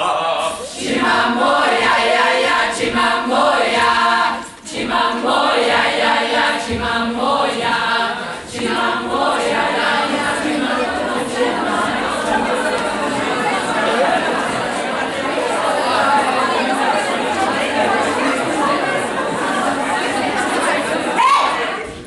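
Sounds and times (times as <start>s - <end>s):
a cappella group singing: 0.0s - 22.0s.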